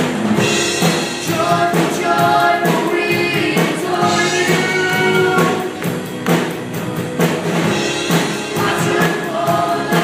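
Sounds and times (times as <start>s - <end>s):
rock band playing: 0.0s - 10.0s
voices singing held notes: 1.2s - 6.0s, 8.4s - 10.0s.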